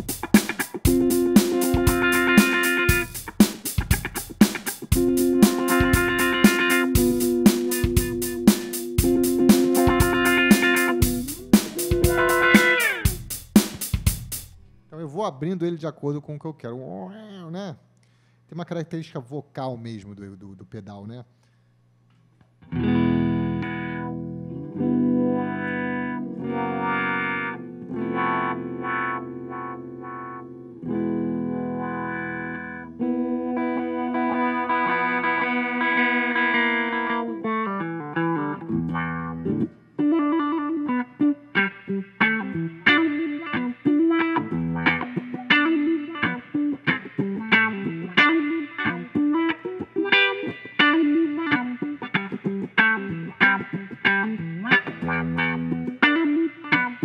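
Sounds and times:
electric guitar with wah pedal: 0.0s - 14.5s, 22.6s - 57.0s.

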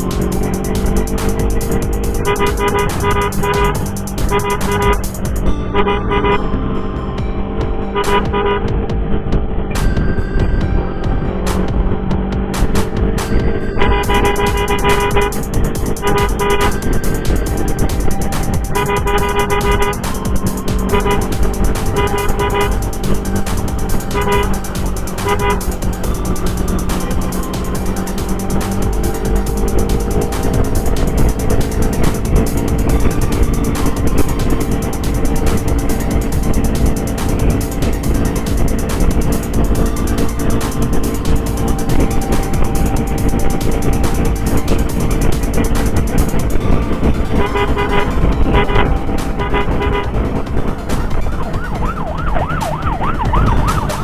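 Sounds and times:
horn short blasts: 0.0s - 6.5s, 7.9s - 8.7s, 13.8s - 46.7s, 47.3s - 50.3s
motorcycle engine: 0.0s - 54.0s.

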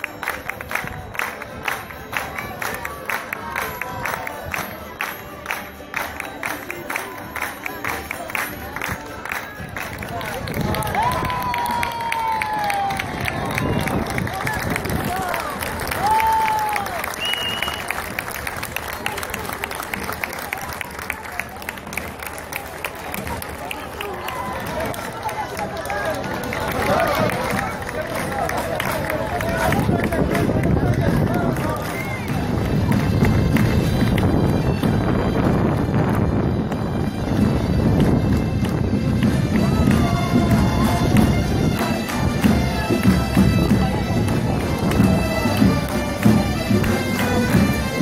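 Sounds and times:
crowd voices: 0.0s - 48.0s
parade music: 0.0s - 48.0s
bagpipes: 12.5s - 48.0s.

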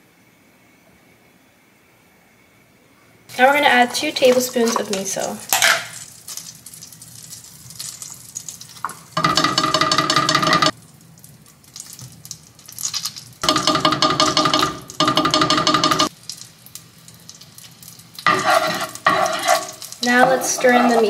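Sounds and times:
miso sizzling in skillet: 3.3s - 21.0s.

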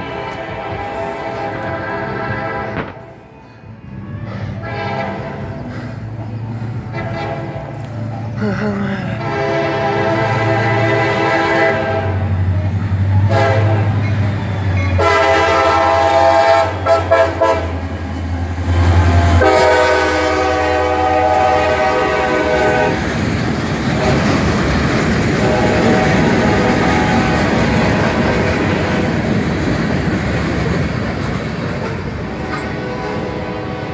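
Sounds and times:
locomotive horn blasts: 0.0s - 3.2s, 4.6s - 5.7s, 6.9s - 7.8s, 9.2s - 12.3s, 13.2s - 14.1s, 14.8s - 17.9s, 19.2s - 23.1s, 24.0s - 24.4s, 25.4s - 29.1s, 32.3s - 33.9s
diesel engine rumbling: 0.0s - 33.9s
train wheels clacking over rails: 12.5s - 33.9s.

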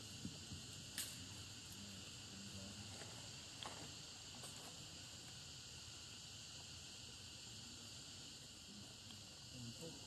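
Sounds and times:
insects chorus: 0.0s - 10.0s.

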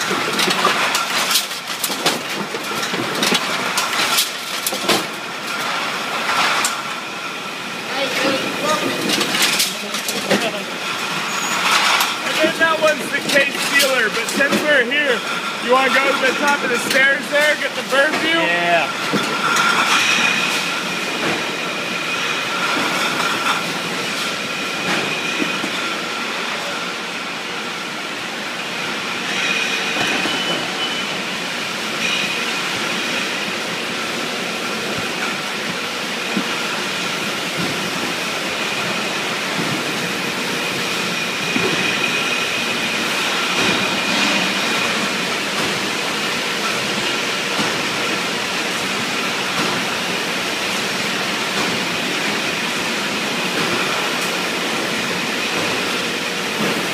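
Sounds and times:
glass bottles clinking and rattling: 0.0s - 7.2s, 8.0s - 26.6s, 29.2s - 31.2s, 31.9s - 50.0s
high machine whine: 0.0s - 56.9s.

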